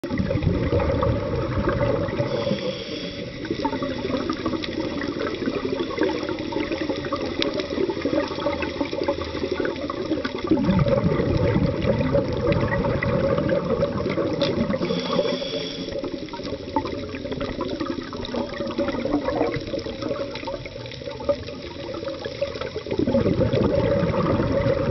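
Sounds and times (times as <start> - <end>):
underwater bubbles gurgling: 0.0 - 24.9
short hiss: 2.3 - 3.4, 14.8 - 16.0.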